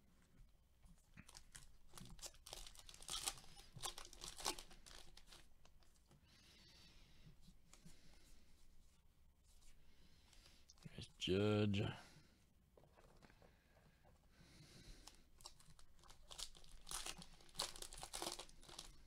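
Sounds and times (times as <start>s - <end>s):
wrapper tearing and crinkling: 1.2s - 5.8s, 15.0s - 19.0s
cards rustling: 15.0s - 19.0s.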